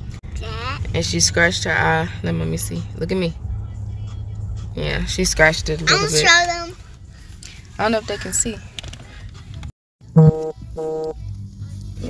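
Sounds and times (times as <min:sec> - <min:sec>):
two-note tone sound effect: 0:10.2 - 0:11.2.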